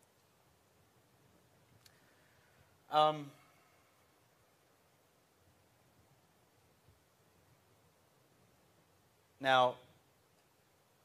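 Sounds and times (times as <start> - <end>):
faint click: 1.7 - 2.1.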